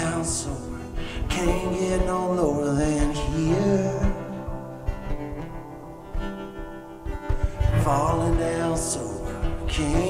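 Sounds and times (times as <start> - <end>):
acoustic guitar strummed chords: 0.0 - 10.0.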